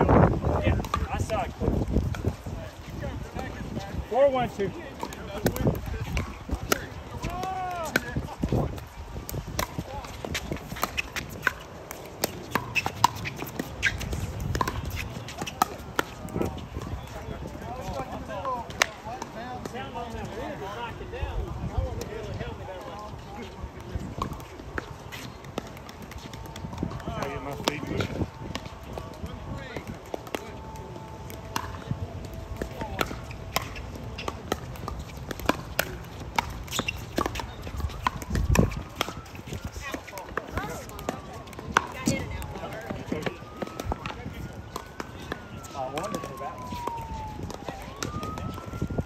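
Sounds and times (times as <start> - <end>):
players' voices: 0.0 - 49.0
distant siren: 13.6 - 17.2, 23.4 - 49.0
paddles hitting plastic ball: 23.9 - 49.0.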